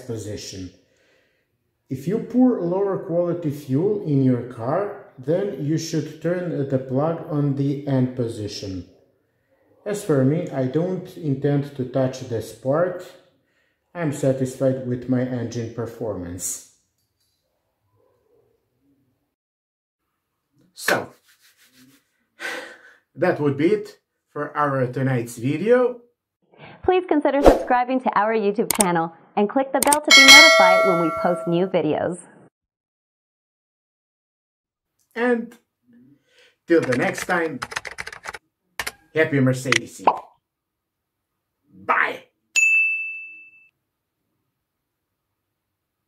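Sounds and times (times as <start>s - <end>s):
man's sharp in-breath: 0.8s - 1.5s
bell-like ding: 30.1s - 31.7s, 42.6s - 43.7s.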